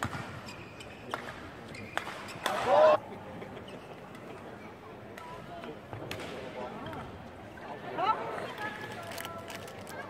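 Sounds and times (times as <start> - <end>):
spectator chatter: 1.6 - 10.0.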